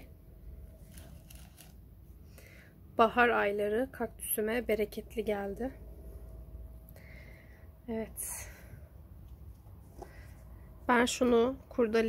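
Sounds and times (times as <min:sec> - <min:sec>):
low steady background rumble: 0:00.0 - 0:12.0.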